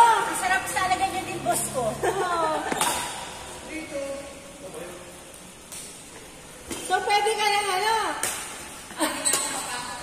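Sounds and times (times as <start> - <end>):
racket hitting shuttlecock: 2.6 - 3.4, 8.2 - 8.6, 9.2 - 9.6.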